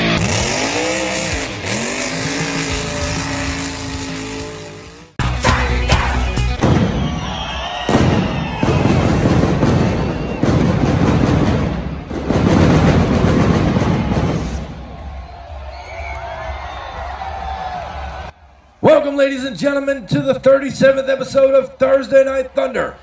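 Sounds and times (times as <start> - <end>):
crowd cheering: 0.0 - 23.0
music: 2.5 - 7.7, 12.9 - 18.6
fireworks bangs and crackle: 6.6 - 15.6.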